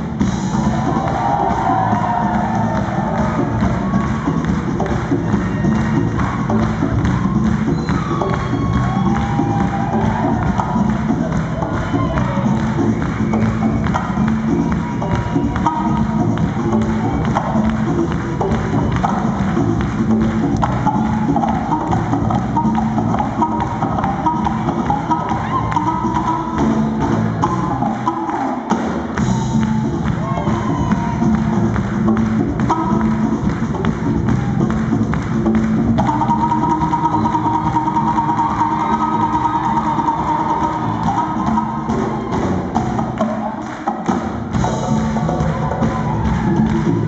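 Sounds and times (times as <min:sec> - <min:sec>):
afropop band playing: 0:00.0 - 0:47.0.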